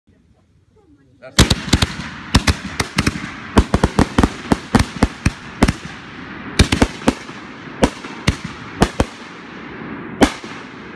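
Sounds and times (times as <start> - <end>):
fireworks bangs: 1.3 - 10.9.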